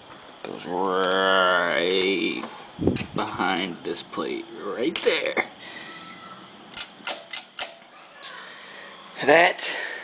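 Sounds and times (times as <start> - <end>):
sharp metallic clicks: 6.7 - 7.9.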